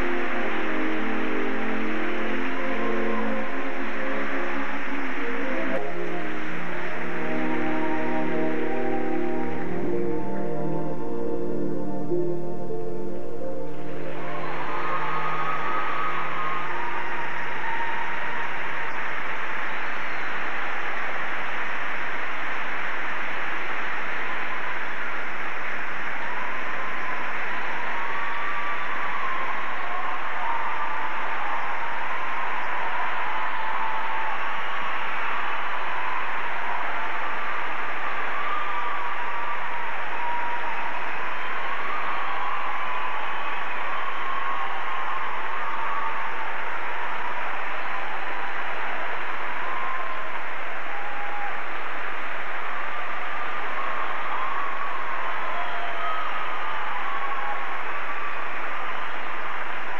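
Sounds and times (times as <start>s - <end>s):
audience applauding: 0.0s - 11.8s, 13.7s - 59.9s
faint melody: 0.0s - 16.5s.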